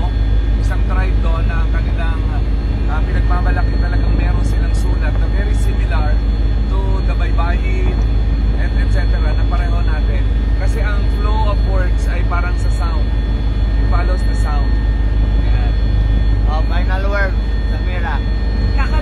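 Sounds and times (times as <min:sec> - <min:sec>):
helicopter engine and rotor rumble: 0:00.0 - 0:19.0
steady high whine: 0:00.0 - 0:19.0.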